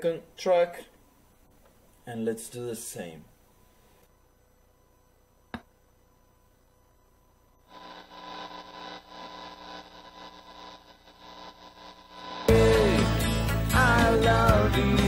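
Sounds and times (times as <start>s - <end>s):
guitar amplifier hum and hiss: 7.4s - 15.0s.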